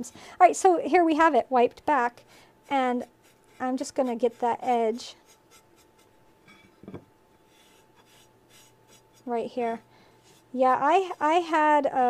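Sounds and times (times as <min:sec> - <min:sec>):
sponge rubbing clay plate: 0:02.6 - 0:06.2, 0:07.4 - 0:11.8.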